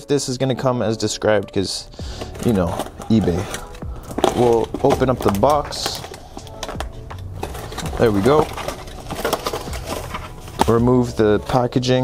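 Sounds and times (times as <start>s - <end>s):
knife slitting tape and cardboard: 7.4s - 11.2s.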